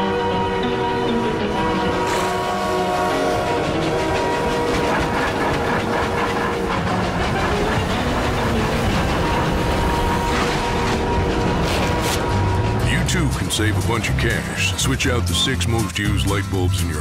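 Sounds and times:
background music held notes: 0.0s - 17.0s
steam locomotive chugging: 0.6s - 17.0s.

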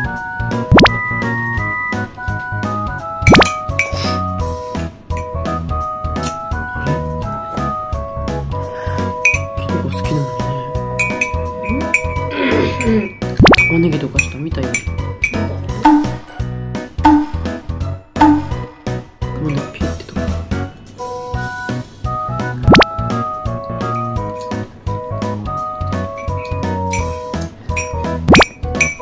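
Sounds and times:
light background music: 0.0s - 29.0s.

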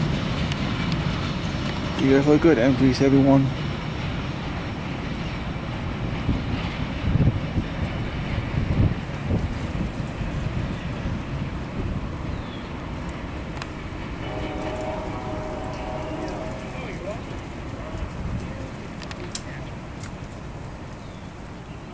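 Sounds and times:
train wheels rolling on rails: 0.0s - 21.9s
train cars knocking: 13.1s - 19.6s.

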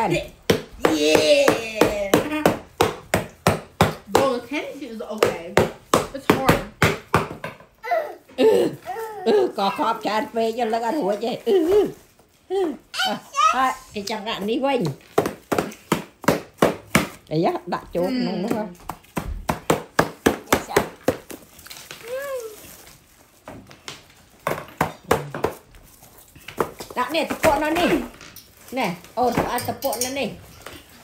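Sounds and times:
stick whacking cardboard pinata: 0.0s - 4.5s
stick knocking on pinata: 0.0s - 7.7s, 15.1s - 17.2s, 18.4s - 21.4s
small child's voice: 7.8s - 8.3s, 8.9s - 9.3s, 12.9s - 13.9s, 22.0s - 22.8s.

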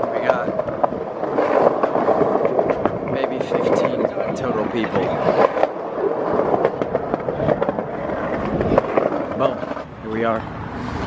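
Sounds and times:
street noise: 0.0s - 11.0s.

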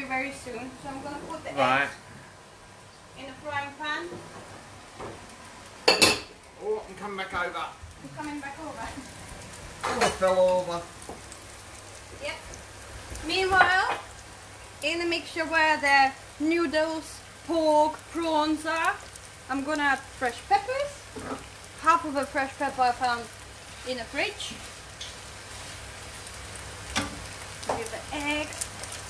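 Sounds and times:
noodles sizzling in frying pan: 0.0s - 29.0s.

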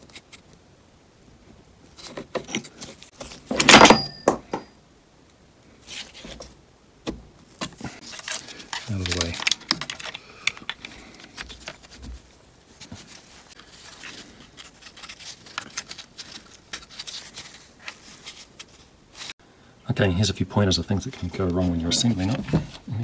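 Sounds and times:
plastic and metal clicks and scrapes: 7.6s - 12.1s.

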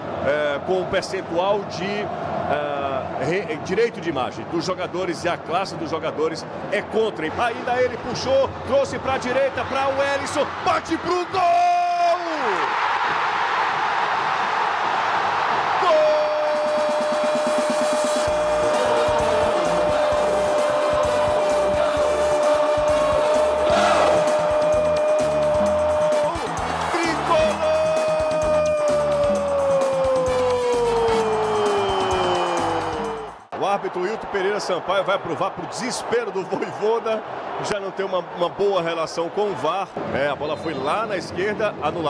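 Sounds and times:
stadium crowd cheering: 0.0s - 6.1s, 7.2s - 41.0s
commentator shouting goal: 15.8s - 33.2s.

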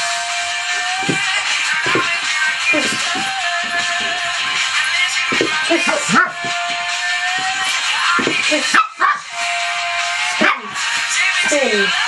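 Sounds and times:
background music: 0.0s - 12.0s
small dog barking and yipping: 8.7s - 9.2s.

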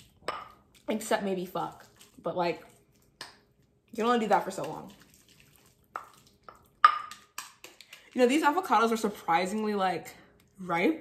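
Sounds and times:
spoon mashing avocado: 1.6s - 8.7s
spoon knocking against bowl: 6.8s - 7.6s.

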